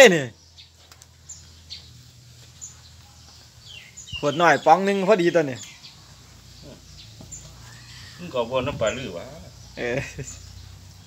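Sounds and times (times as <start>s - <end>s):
faint animal call: 7.5s - 8.6s.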